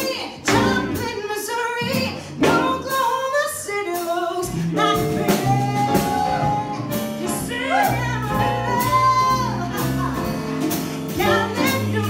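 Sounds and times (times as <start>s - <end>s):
upright bass: 0.0s - 1.2s, 1.8s - 3.2s, 4.4s - 12.0s
drum kit with cymbals: 0.0s - 12.0s
woman singing jazz: 0.0s - 12.0s.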